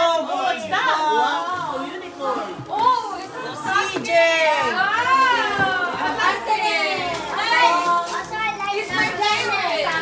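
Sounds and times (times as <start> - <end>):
children chattering excitedly: 0.0 - 10.0.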